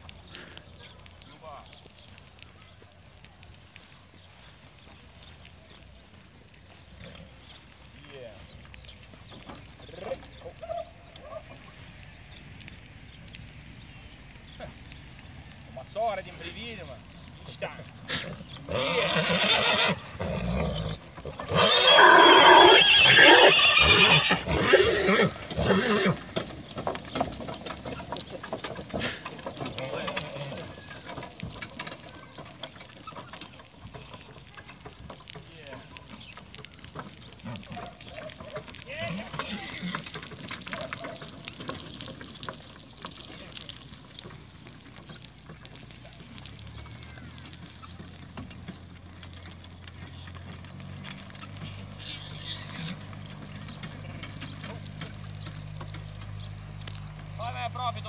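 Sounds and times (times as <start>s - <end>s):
wagon rattling and clattering: 16.6s - 58.0s
horse neighing loudly: 18.7s - 26.2s.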